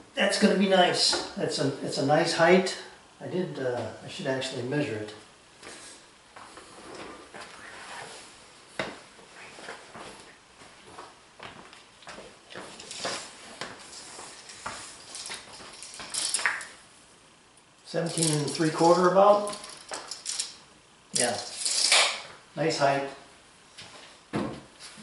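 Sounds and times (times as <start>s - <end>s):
footsteps: 8.8s - 16.6s.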